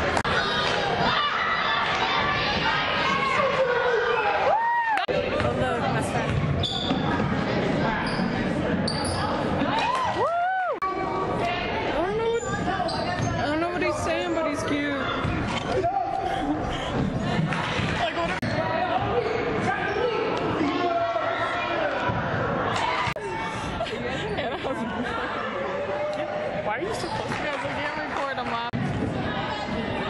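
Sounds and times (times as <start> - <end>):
spectators' voices: 0.0 - 30.0
shoes squeaking on floor: 6.6 - 7.2, 8.0 - 9.4, 12.0 - 15.8.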